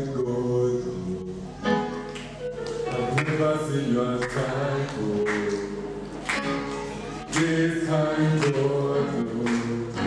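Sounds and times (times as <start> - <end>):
gospel worship music: 0.0 - 10.0
leader singing: 2.8 - 10.0.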